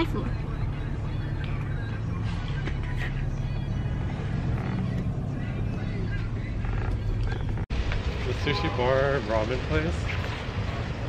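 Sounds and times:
music playing: 0.0 - 7.6
car engine and road noise: 0.0 - 11.0.

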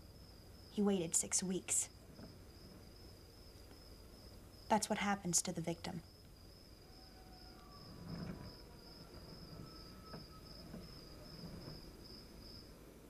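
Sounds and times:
cricket chirping: 0.0 - 12.9
soft rustles: 7.7 - 12.7.

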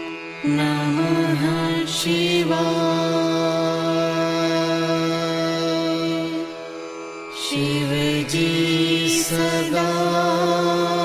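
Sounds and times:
devotional chanting in held notes: 0.0 - 11.0.

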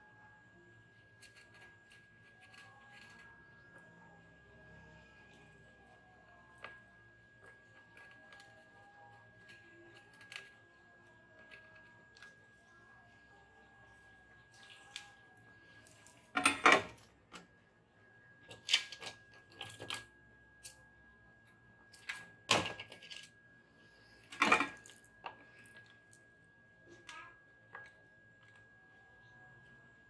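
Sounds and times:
faint high-pitched whine: 0.0 - 30.0.

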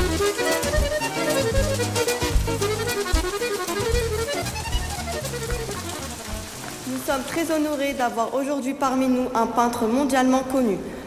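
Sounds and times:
film music: 0.0 - 7.6
rain on wet pavement: 0.0 - 8.7.

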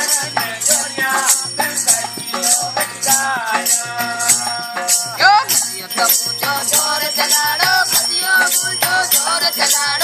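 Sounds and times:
rhythmic rattling percussion: 0.0 - 10.0.

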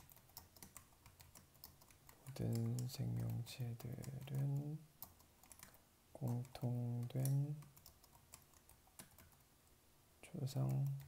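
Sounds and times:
keyboard typing: 0.0 - 9.5, 10.5 - 11.0.

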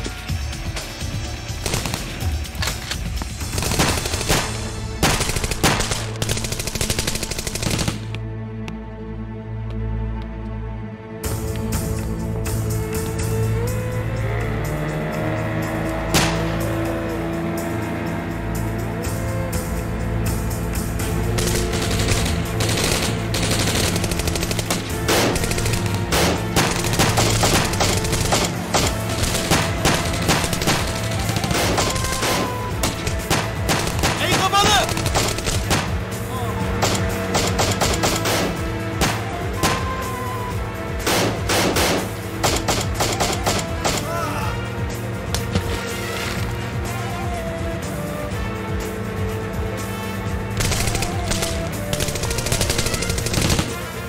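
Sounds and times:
tense background music: 0.0 - 54.0
handgun shots in rapid bursts: 1.5 - 8.2, 21.3 - 36.1, 36.7 - 40.2, 41.0 - 44.1, 50.5 - 54.0.

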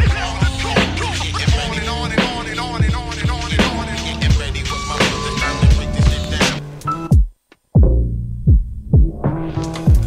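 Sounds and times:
deep kick drums: 1.5 - 4.6, 7.2 - 9.2.

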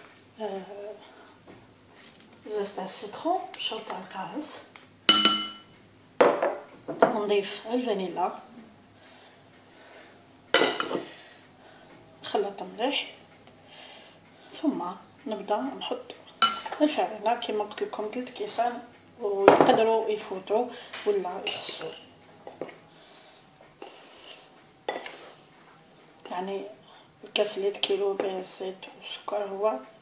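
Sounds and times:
kitchenware clattering: 5.1 - 7.2, 10.6 - 11.1, 16.4 - 16.8.

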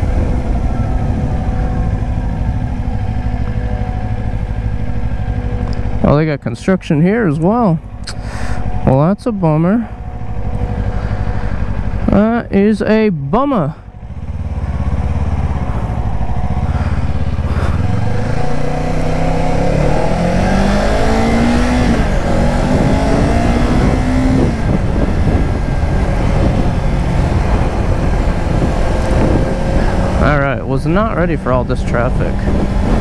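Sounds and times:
motorcycle engine pulling away: 14.0 - 33.0.

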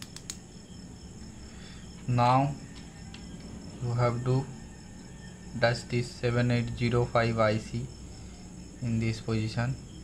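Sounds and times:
light clicks of electronic parts: 0.0 - 0.4
high-pitched insect-like trill: 0.0 - 10.0.

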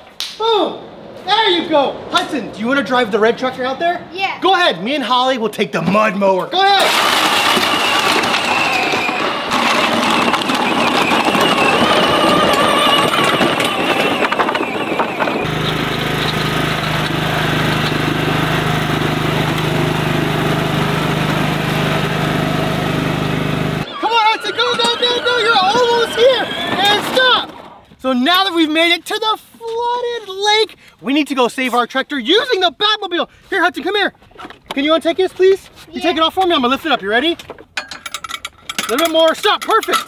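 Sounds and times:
lawn tractor engine running: 6.8 - 27.8.

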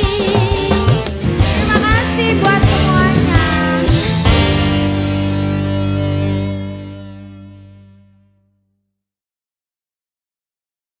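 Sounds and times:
band final chord with electric guitar: 0.0 - 8.4.

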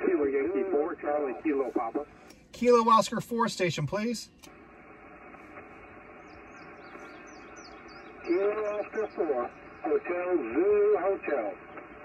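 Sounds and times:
radio receiver hiss: 0.0 - 12.0
small birds chirping: 5.6 - 12.0.

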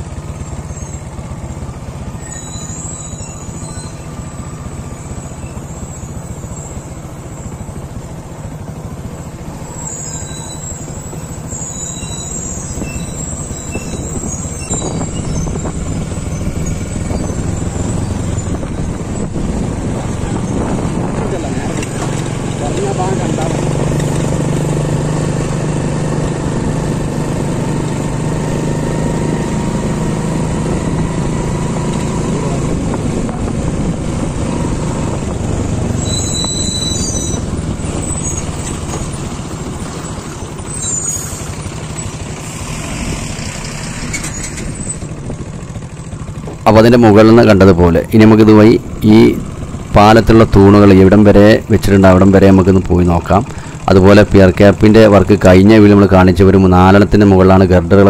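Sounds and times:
engine humming: 0.0 - 58.0
vehicle rumble with rushing hiss: 0.0 - 58.0.

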